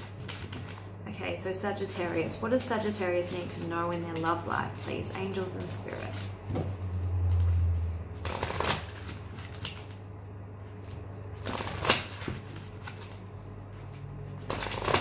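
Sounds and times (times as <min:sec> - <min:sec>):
cards being shuffled: 0:00.0 - 0:00.9, 0:01.8 - 0:10.1, 0:10.7 - 0:15.0
steady low hum: 0:00.0 - 0:15.0.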